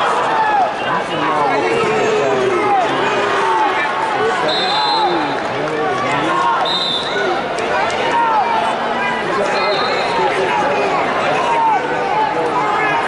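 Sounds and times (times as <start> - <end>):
crowd shouting in a large hall: 0.0 - 13.0.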